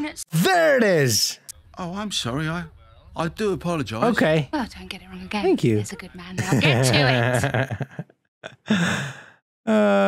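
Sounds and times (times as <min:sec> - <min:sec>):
man laughing breathily: 0:06.4 - 0:09.4.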